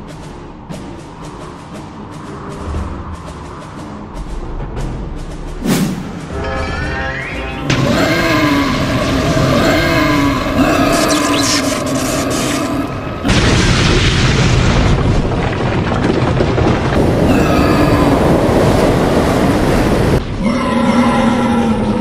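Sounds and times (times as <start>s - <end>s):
monster bellowing roar: 7.7s - 13.4s, 17.0s - 22.0s
loud booming rumble: 13.1s - 20.4s.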